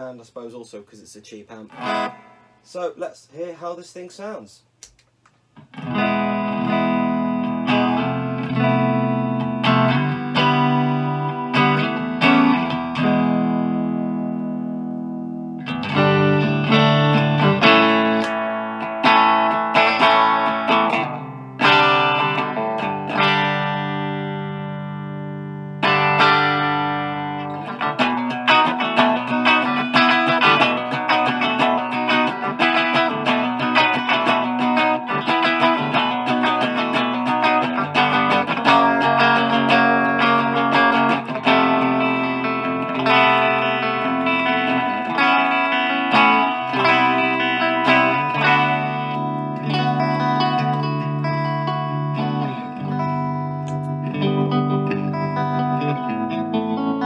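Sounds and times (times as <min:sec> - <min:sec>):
electric guitar chords and riffs: 0:01.7 - 0:02.6, 0:05.6 - 0:57.0.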